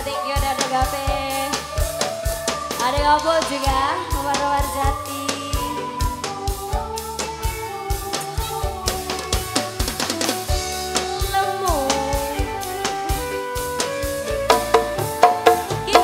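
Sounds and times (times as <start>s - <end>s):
drum kit and hand drums: 0.0s - 16.0s
sustained keyboard notes: 0.0s - 16.0s.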